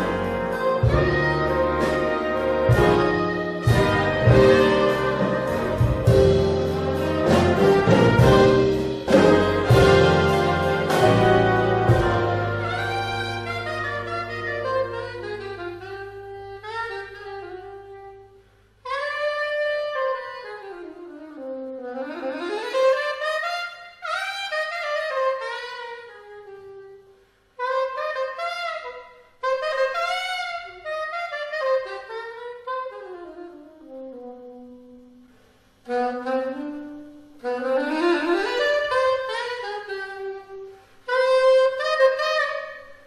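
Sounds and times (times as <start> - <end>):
big band held chord: 0.0 - 16.3
soprano saxophone jazz phrases: 0.0 - 43.0.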